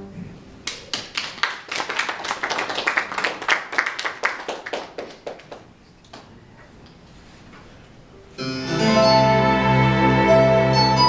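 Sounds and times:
small audience clapping: 0.6s - 6.4s.

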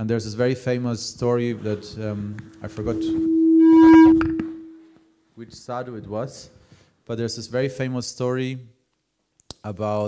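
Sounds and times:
microphone feedback tone: 2.4s - 5.0s.

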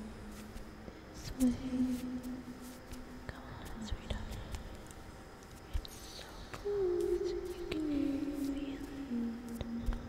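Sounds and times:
eerie whispering voice: 0.0s - 5.0s, 5.6s - 10.0s.

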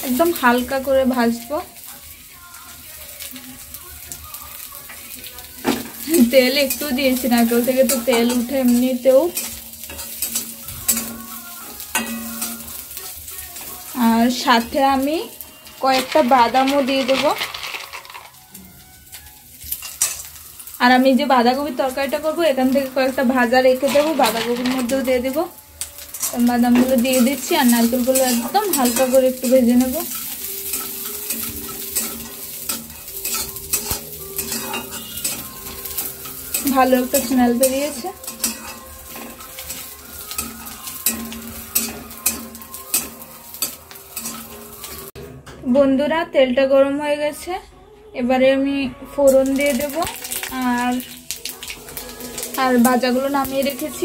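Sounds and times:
frying sizzle: 0.0s - 46.2s, 48.7s - 54.0s
metal spatula scraping pan: 5.7s - 18.4s, 19.6s - 45.4s, 51.6s - 54.0s.

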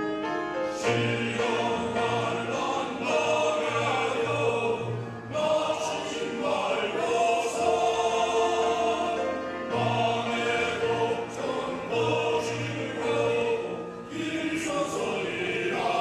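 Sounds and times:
men's choir singing: 0.7s - 16.0s.

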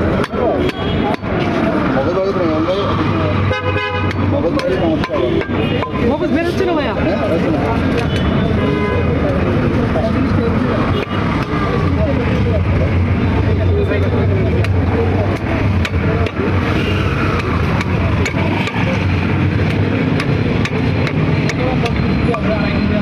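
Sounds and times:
chatter of voices: 0.0s - 23.0s.

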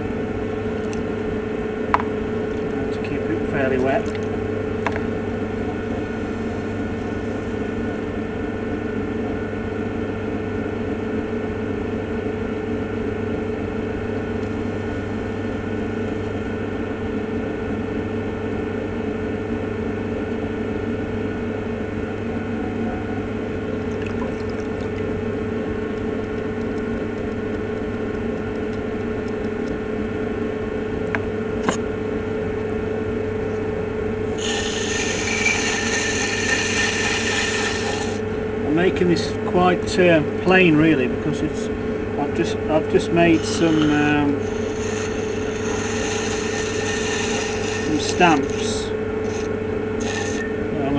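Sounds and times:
potter's wheel motor humming: 0.0s - 50.9s
rib scraping spinning clay: 34.4s - 38.3s, 42.9s - 50.8s.

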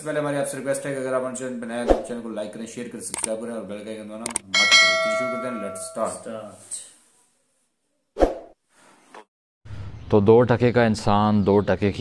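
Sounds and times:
bell chime: 4.6s - 6.3s.

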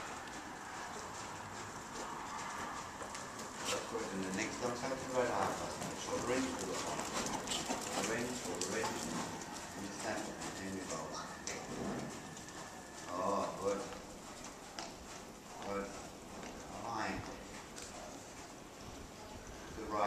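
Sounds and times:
horse hoofbeats on sand: 0.0s - 20.0s.

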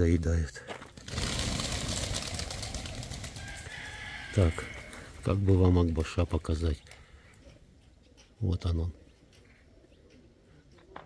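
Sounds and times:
pigeon wings flapping: 0.9s - 5.2s.

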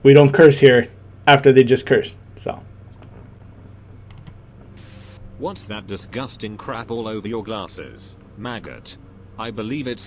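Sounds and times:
low steady hum: 0.0s - 10.0s
tv static hiss: 4.7s - 10.0s.

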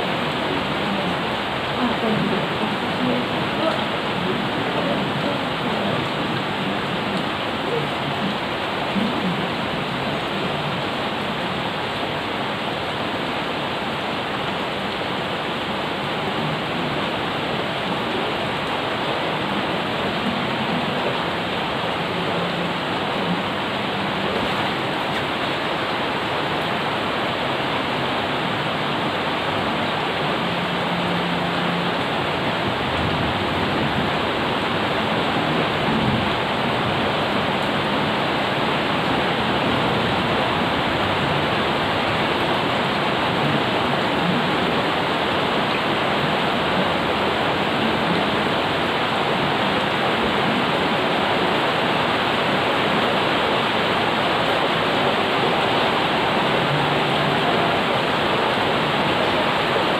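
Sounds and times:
rain pouring on plants and paving: 0.0s - 59.9s.

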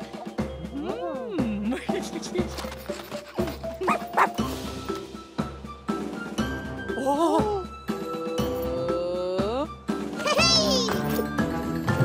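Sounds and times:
cartoon background music: 0.0s - 12.0s
puppy yipping: 3.8s - 4.4s.

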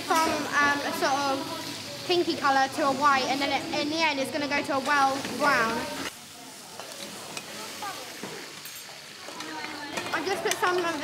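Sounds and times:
meat sizzling in a pan: 0.0s - 11.0s
utensil clicking against pan: 9.3s - 11.0s.

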